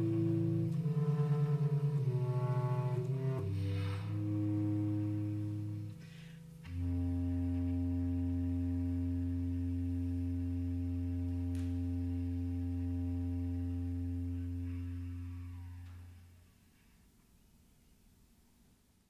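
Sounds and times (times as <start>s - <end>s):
low bass clarinet note: 0.0s - 17.0s.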